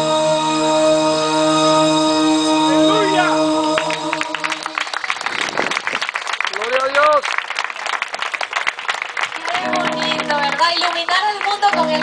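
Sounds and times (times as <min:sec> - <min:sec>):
audience clapping: 0:03.7 - 0:12.0.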